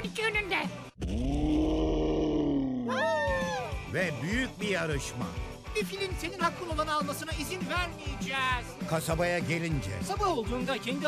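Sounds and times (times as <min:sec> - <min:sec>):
cartoon dinosaur roaring: 0:01.0 - 0:03.2.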